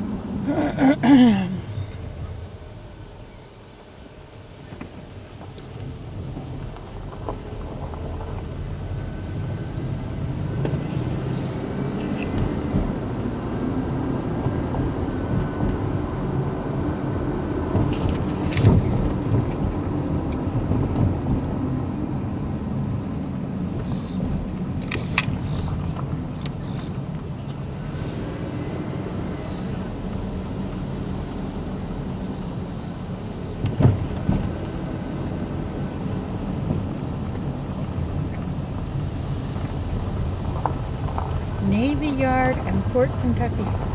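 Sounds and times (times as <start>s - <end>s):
car engine and road noise: 0.0s - 43.9s
sharp clicks in car: 24.8s - 26.7s.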